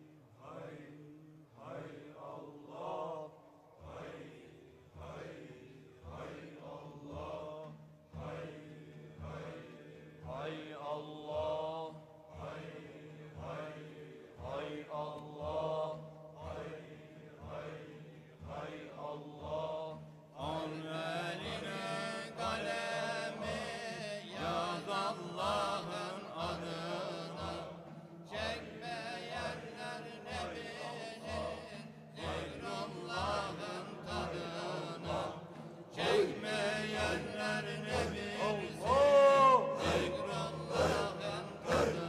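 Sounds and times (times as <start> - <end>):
men chanting in unison: 0.0 - 42.0.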